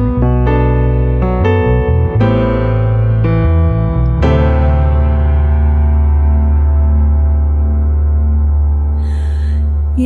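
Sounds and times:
electric bass note: 0.0s - 10.0s
electric piano chord: 0.0s - 10.0s.

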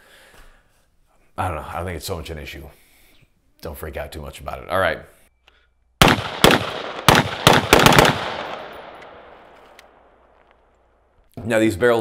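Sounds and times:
ringing gunshot echo: 6.0s - 9.4s
rifle shots: 6.0s - 10.1s.

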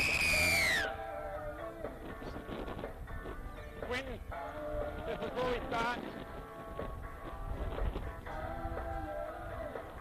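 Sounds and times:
high whistle-like tone gliding down: 0.0s - 1.0s
background music: 0.0s - 10.0s.

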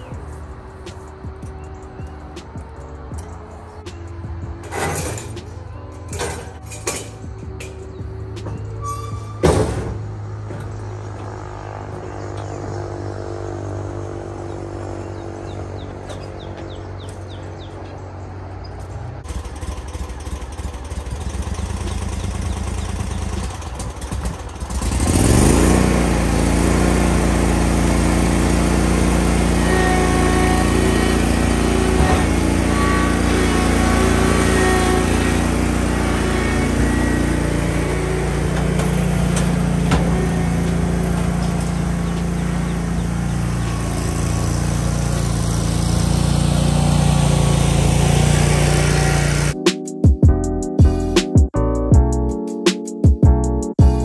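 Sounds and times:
lawn mower engine running: 0.0s - 49.8s.

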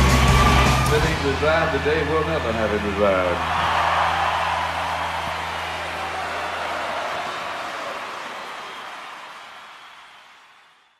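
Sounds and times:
live rock band held note: 0.0s - 3.7s
crowd cheering: 0.0s - 10.9s.

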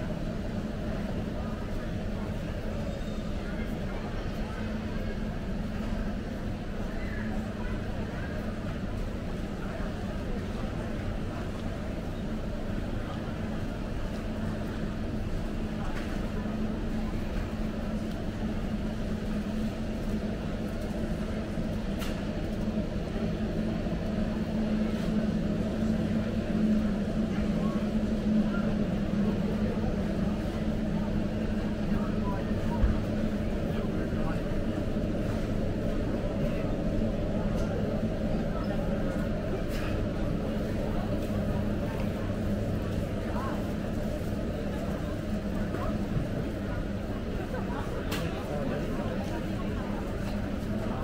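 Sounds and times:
indistinct shoppers' voices: 0.0s - 51.0s.

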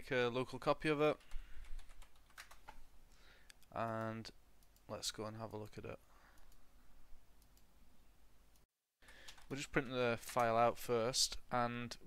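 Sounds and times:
keyboard typing: 1.2s - 2.8s, 9.1s - 10.6s.

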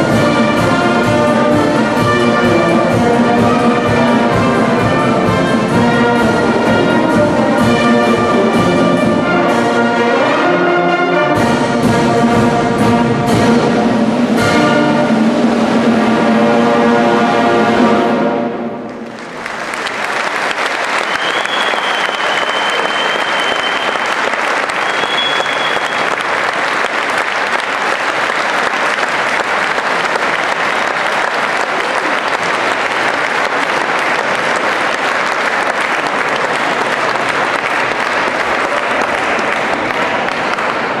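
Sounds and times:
audience applauding: 18.9s - 41.0s
high thin whistle: 21.0s - 26.2s.

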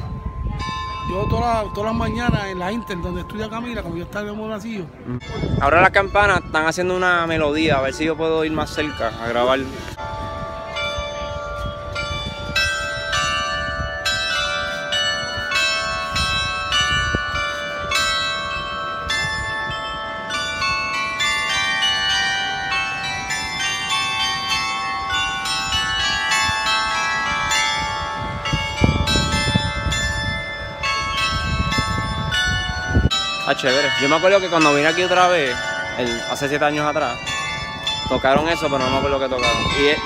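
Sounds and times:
clock bells playing melody: 7.9s - 40.0s.

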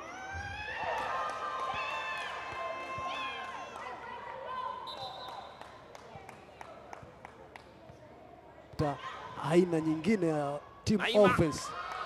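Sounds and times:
voices of players and onlookers: 0.0s - 12.0s.

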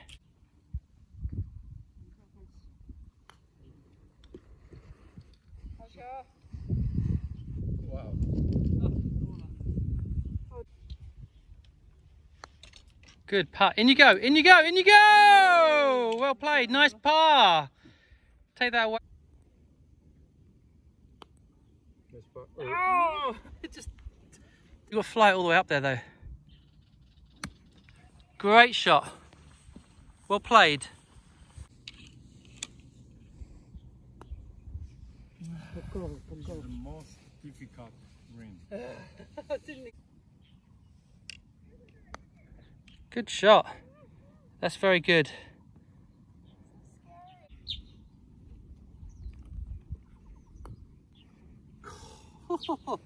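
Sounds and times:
wind buffeting on microphone: 0.7s - 2.1s, 4.6s - 11.6s, 48.6s - 51.0s.

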